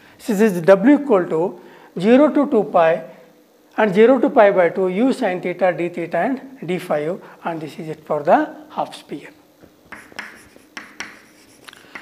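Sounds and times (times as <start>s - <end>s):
chalk tapping and scratching: 9.9s - 12.0s.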